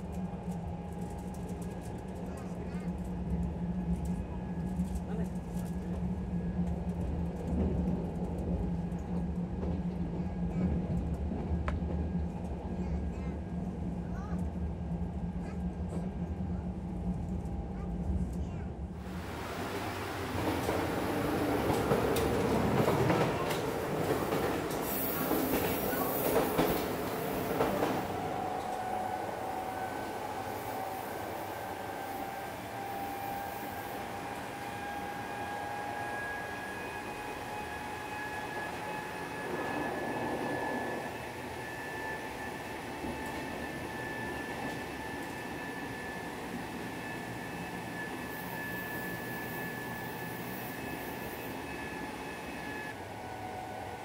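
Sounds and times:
train wheels rumbling on track: 0.0 - 54.0.

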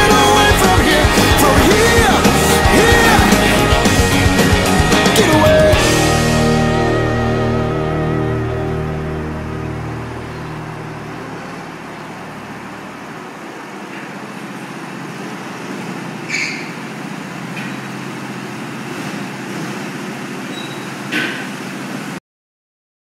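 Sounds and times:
rock music: 0.0 - 12.0
high-pitched squeal: 0.0 - 13.6, 16.2 - 16.9
go-kart engines droning: 0.0 - 22.2.

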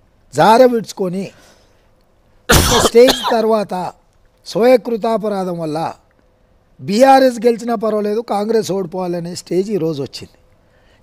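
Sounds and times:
man speaking: 0.3 - 1.4, 2.8 - 6.0, 6.8 - 10.4
man clearing his throat: 2.5 - 3.4.

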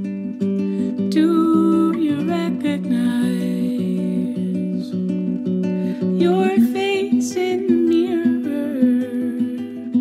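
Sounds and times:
fingerpicked acoustic guitar: 0.0 - 10.0.

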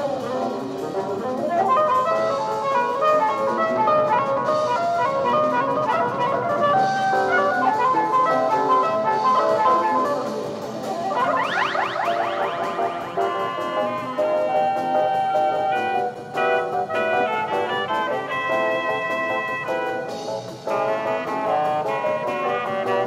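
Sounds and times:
jazz fusion band: 0.0 - 23.0
rapid rising pitch sweeps: 10.8 - 15.1.

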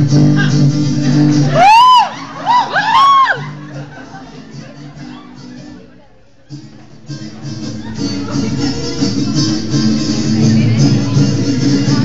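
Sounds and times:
backing music with low notes: 0.0 - 12.0
loud whoops and yells: 1.5 - 3.6.

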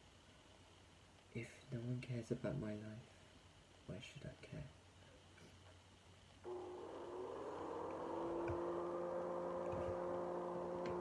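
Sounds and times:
vacuum cleaner running: 6.5 - 11.0.

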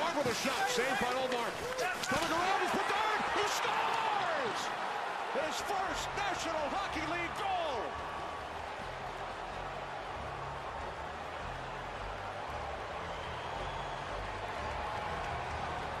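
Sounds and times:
arena crowd cheering: 0.0 - 16.0.

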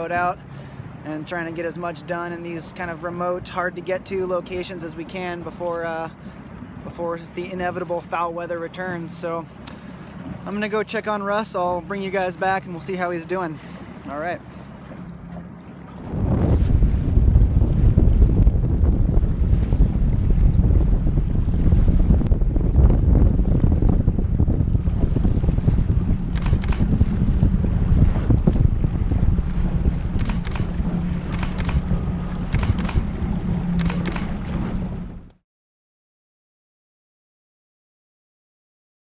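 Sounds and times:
outboard motor droning: 0.0 - 35.4
water rushing past hull: 0.0 - 35.4
wind buffeting microphone: 11.6 - 35.3.

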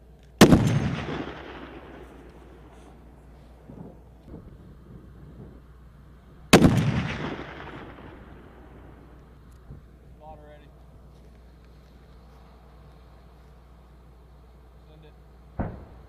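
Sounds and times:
rifle shot with echo: 0.4 - 4.4, 6.5 - 9.2, 15.5 - 16.0.

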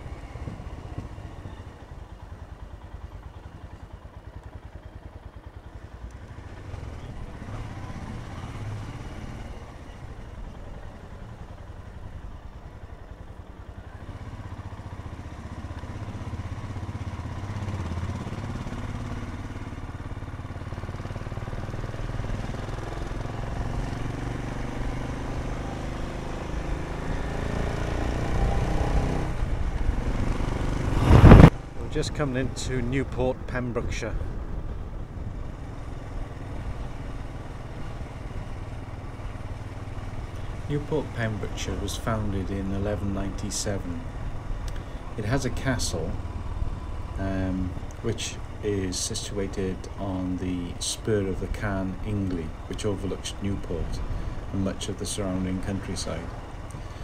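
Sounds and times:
motorcycle engine riding: 0.0 - 57.0.

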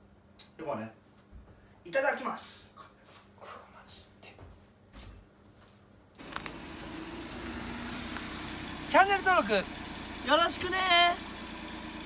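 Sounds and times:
small truck engine running: 6.2 - 12.0.

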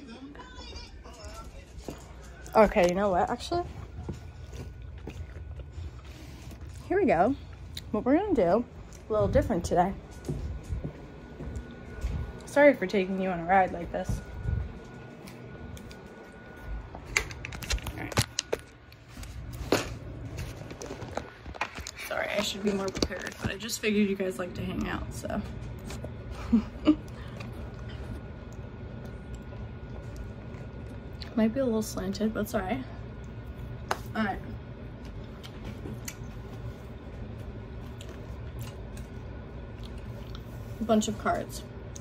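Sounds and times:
low room hum: 0.0 - 42.0.

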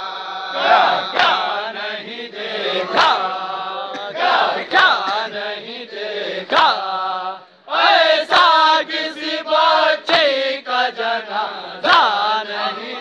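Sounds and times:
men chanting over loudspeakers: 0.0 - 13.0.

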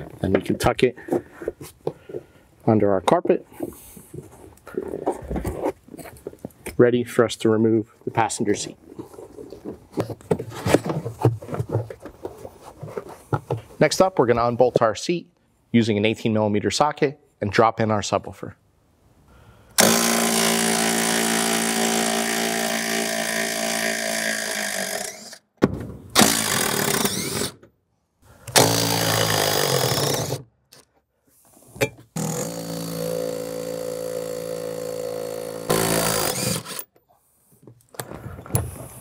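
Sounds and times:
cordless power tool spinning: 19.8 - 25.4, 26.2 - 27.6, 28.5 - 30.4, 32.2 - 36.9.

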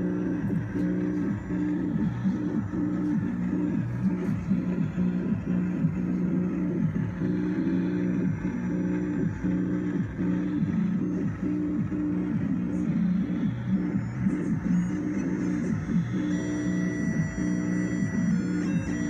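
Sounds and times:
sliding low synthesizer tones: 0.0 - 17.0.

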